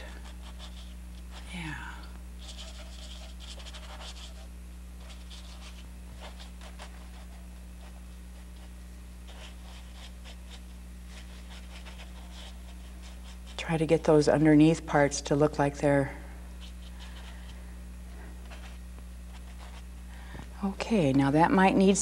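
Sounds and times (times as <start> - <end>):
paintbrush scratching on canvas: 0.0 - 13.9, 16.6 - 19.9
low steady hum: 0.0 - 22.0.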